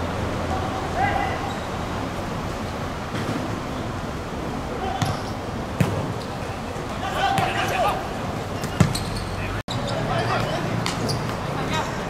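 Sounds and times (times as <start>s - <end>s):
players shouting: 0.4s - 1.8s, 4.6s - 5.6s, 6.3s - 12.0s.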